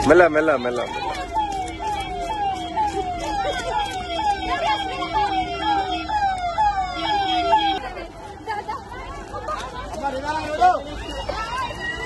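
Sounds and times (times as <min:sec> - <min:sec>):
electronic siren wailing: 0:00.8 - 0:07.8.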